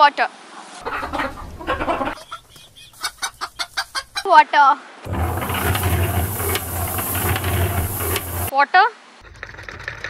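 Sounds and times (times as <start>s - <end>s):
fast rattle of clicks: 5.1s - 8.5s
machine low hum: 5.1s - 8.5s.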